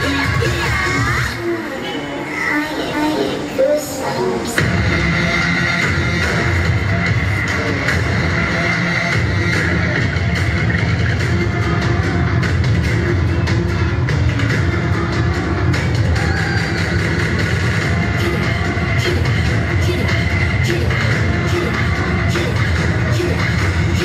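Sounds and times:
electronic dance music over loudspeakers: 0.0 - 24.0.

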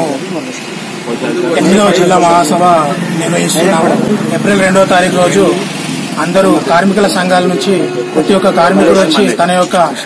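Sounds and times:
man speaking: 1.1 - 10.0.

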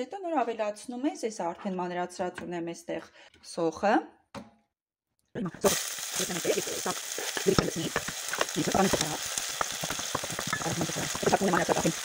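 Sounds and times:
onion sizzling in hot oil: 5.5 - 12.0
spoon scraping a pot: 7.1 - 12.0.

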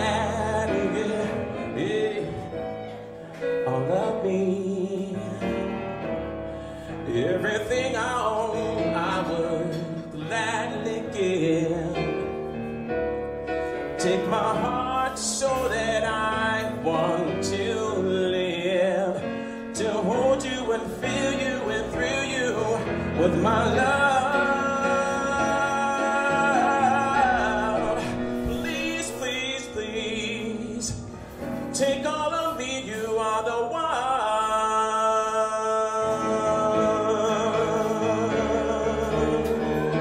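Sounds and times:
man singing a soulful ballad: 0.0 - 40.0.

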